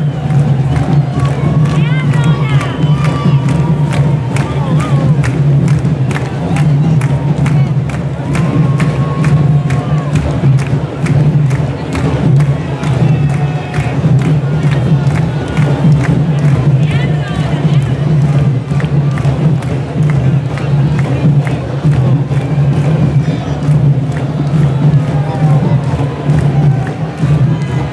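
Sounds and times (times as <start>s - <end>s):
crowd shouting and cheering: 0.0s - 27.9s
drum line playing: 0.0s - 27.9s.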